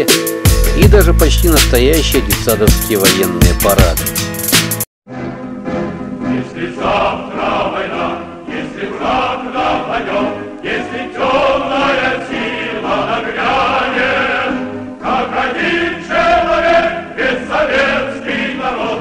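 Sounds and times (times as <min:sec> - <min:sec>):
choir singing: 0:06.2 - 0:19.0.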